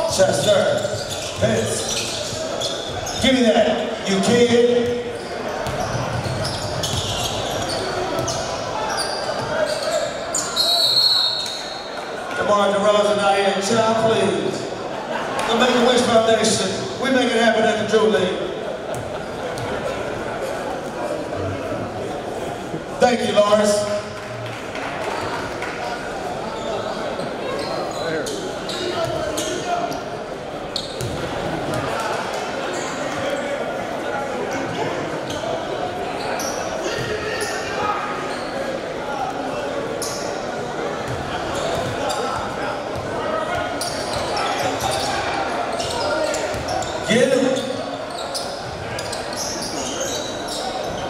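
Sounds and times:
murmur of crowd chatter: 0.0s - 51.0s.

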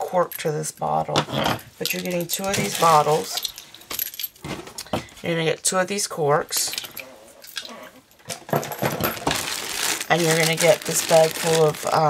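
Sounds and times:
plastic bag rustling: 1.7s - 4.9s, 6.8s - 12.0s.

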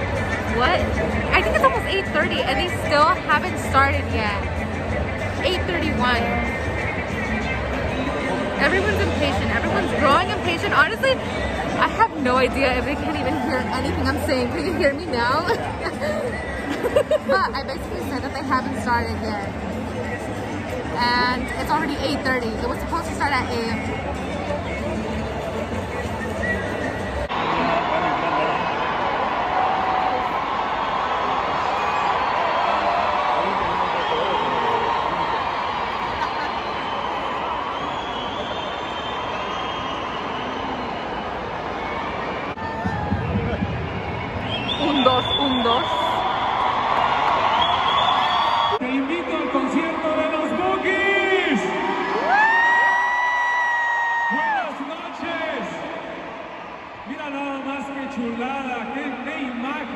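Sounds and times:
stadium crowd chatter: 0.0s - 59.9s
crowd whooping and cheering: 6.4s - 18.0s, 25.6s - 58.6s.

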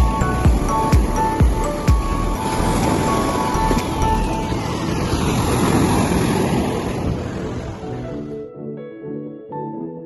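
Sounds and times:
wind on microphone: 0.0s - 8.4s
surf breaking on sandy beach: 2.4s - 8.1s.

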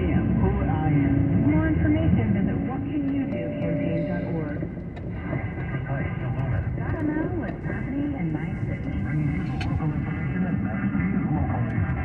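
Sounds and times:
engine and road noise: 0.0s - 12.0s
radio voice over car speakers: 0.0s - 12.0s.

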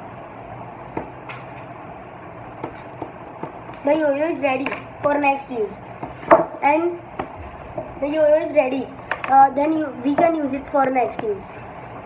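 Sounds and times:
steady background hiss: 0.0s - 12.0s
yo-yo clicks and taps: 0.8s - 7.4s, 8.1s - 11.4s.

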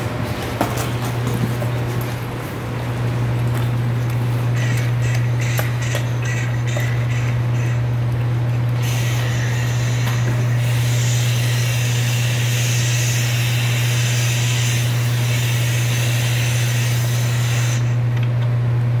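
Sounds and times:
loud steady low hum: 0.0s - 19.0s
hiss: 8.8s - 18.0s.

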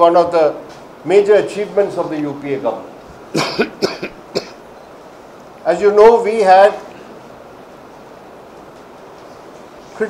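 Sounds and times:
man coughing: 3.3s - 4.6s.

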